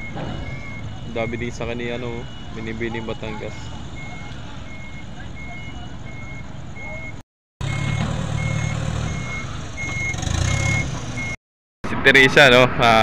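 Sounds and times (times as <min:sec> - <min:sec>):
electronic warning beeper: 0:00.0 - 0:11.4
truck engine rumbling: 0:00.0 - 0:12.0.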